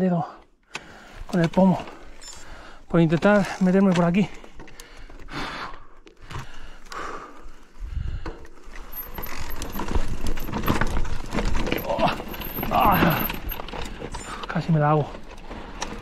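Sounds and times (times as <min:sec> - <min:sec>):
mountain bike rattling over stones: 0:01.2 - 0:05.3, 0:08.5 - 0:16.0
heavy breathing: 0:01.9 - 0:02.9, 0:04.3 - 0:09.1.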